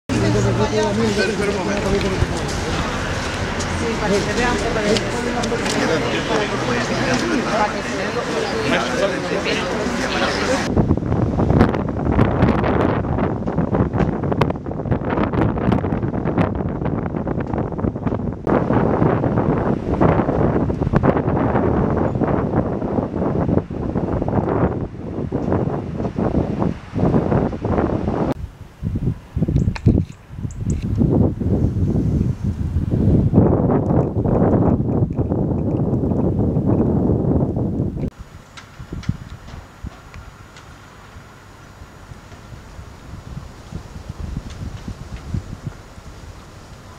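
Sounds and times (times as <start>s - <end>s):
gusty wind buffeting microphone: 0.1s - 46.9s.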